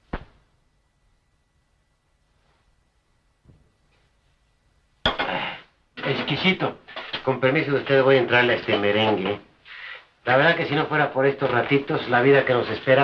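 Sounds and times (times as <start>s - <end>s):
man talking: 6.0s - 9.5s, 10.2s - 13.0s.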